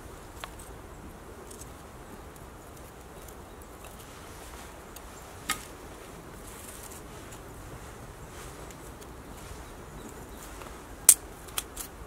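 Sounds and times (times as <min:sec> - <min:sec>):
kindling fire crackling: 0:00.0 - 0:12.0.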